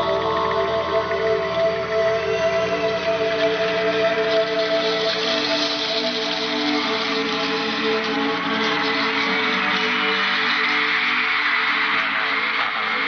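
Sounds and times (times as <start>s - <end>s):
hiss under live concert music: 0.0s - 13.0s.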